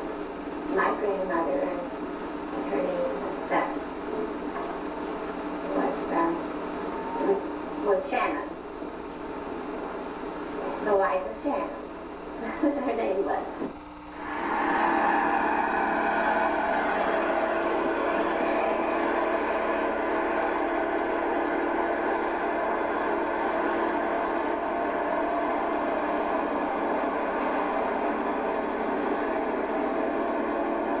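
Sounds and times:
tractor engine droning: 14.2s - 31.0s.

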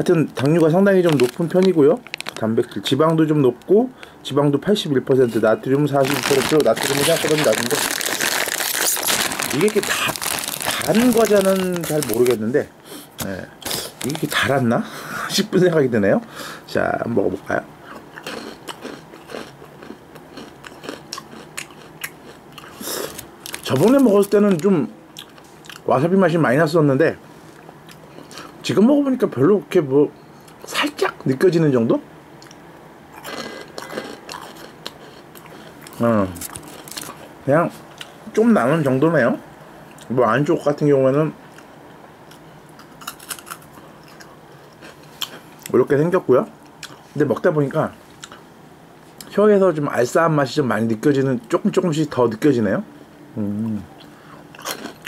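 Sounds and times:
person chewing crunchy snack: 0.4s - 2.4s, 5.9s - 12.4s, 13.6s - 14.4s, 17.9s - 24.6s, 32.4s - 37.3s, 42.3s - 45.7s, 54.5s - 55.0s.

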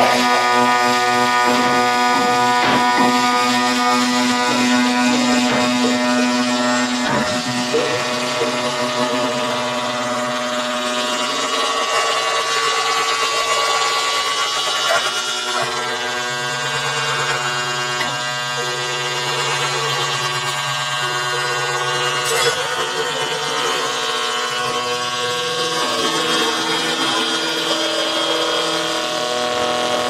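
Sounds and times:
experimental drone music: 0.0s - 30.0s
low drone: 0.0s - 30.0s.

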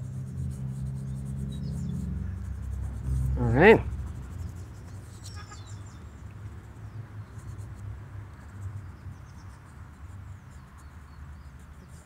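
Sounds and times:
high bird chirps: 5.1s - 6.1s.

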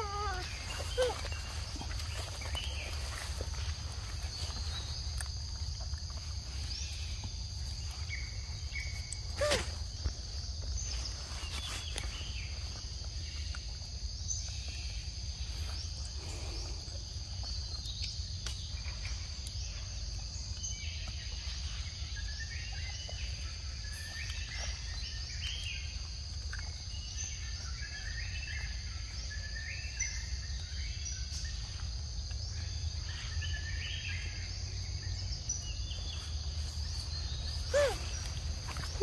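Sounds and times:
insects droning: 0.0s - 39.0s.

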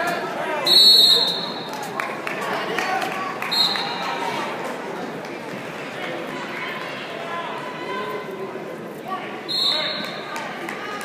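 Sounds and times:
murmur of spectators: 0.0s - 11.0s.

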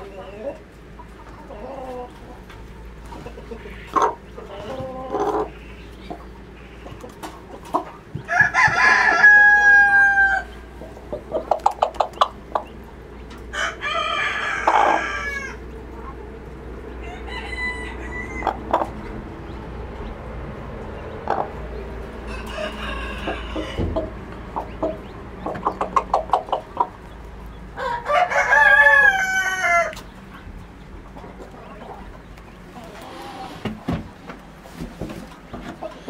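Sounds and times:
chickens clucking: 0.0s - 36.0s
rooster crowing: 8.3s - 10.6s, 13.5s - 15.6s, 17.0s - 18.8s, 22.1s - 24.3s, 27.7s - 30.0s.

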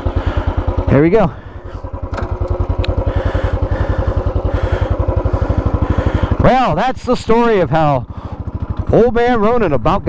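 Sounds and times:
motorcycle engine pulling away: 0.0s - 10.0s.

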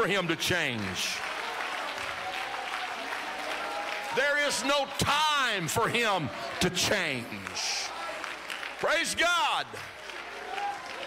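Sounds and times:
crowd applauding and cheering: 0.0s - 11.0s.

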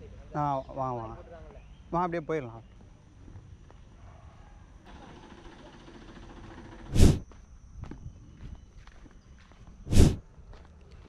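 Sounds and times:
footsteps on dirt path: 6.9s - 11.0s.

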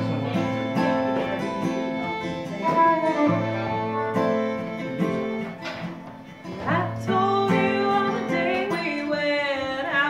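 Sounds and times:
violins playing: 0.0s - 8.5s
acoustic guitar strumming: 0.0s - 10.0s.

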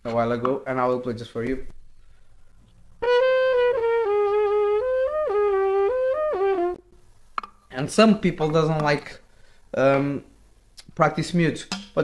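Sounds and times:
muted trumpet playing held notes: 3.0s - 6.8s.

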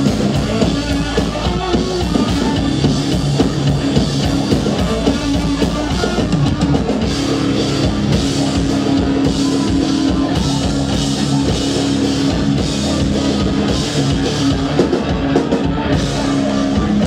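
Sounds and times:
rock band playing live: 0.0s - 17.0s.

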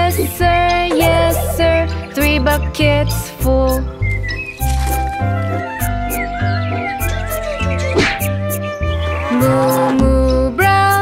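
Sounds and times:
person singing: 0.0s - 3.9s, 9.3s - 11.0s
children's song backing track: 0.0s - 4.0s, 8.5s - 11.0s
cow mooing: 9.0s - 10.2s.

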